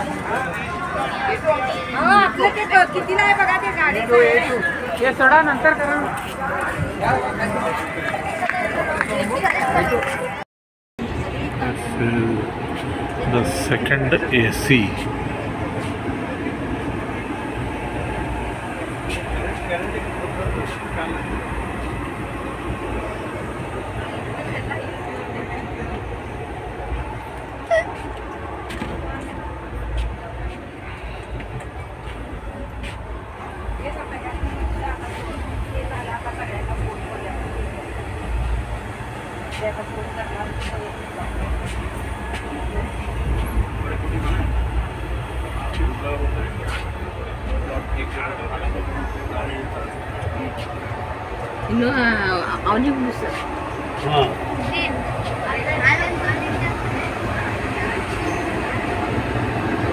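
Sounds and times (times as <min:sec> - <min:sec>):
faint indistinct voices: 0:00.0 - 0:10.4, 0:11.0 - 0:59.9
train low rumble: 0:00.0 - 0:10.4, 0:11.0 - 0:59.9.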